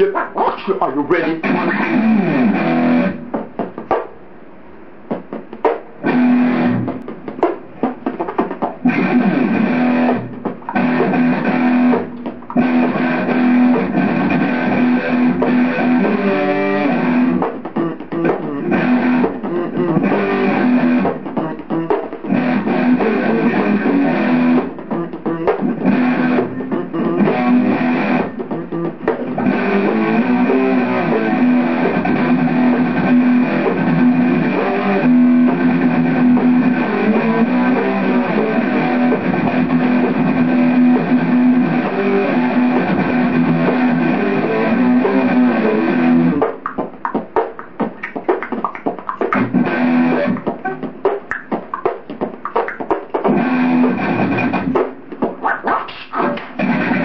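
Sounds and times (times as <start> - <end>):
solo guitar playing: 1.1 - 3.3, 6.0 - 7.1, 8.8 - 57.0.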